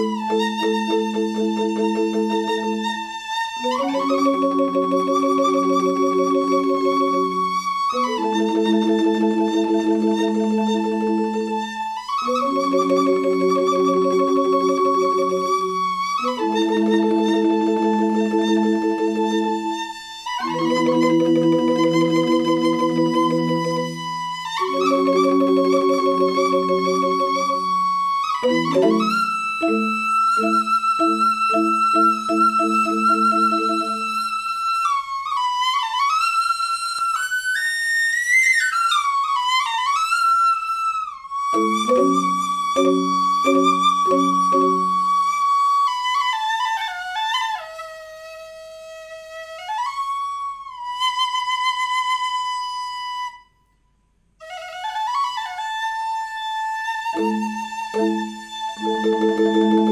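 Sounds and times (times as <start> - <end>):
bamboo flute melody: 0.0 - 53.8, 54.4 - 59.9.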